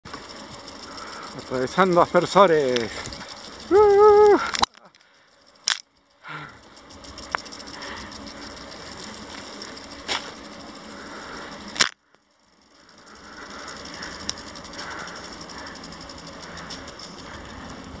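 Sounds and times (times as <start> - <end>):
sprinkler water hissing and ticking: 0.0 - 18.0.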